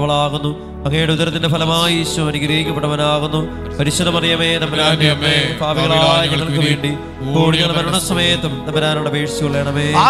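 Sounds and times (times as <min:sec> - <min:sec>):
background music: 0:00.0 - 0:10.0
man chanting a prayer: 0:00.0 - 0:10.0.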